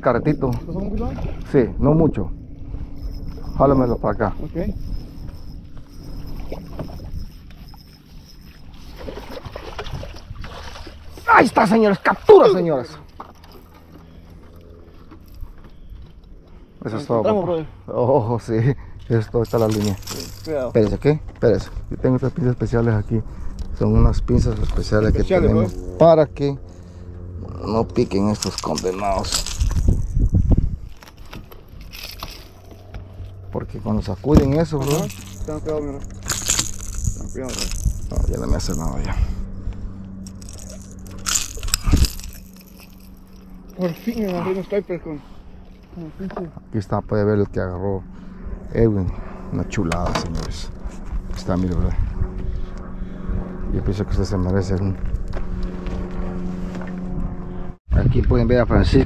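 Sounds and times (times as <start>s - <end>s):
faint hum: 0.0s - 59.0s
low steady rumble: 0.0s - 59.0s
pliers and hooks clicking: 34.8s - 38.9s, 40.2s - 44.4s.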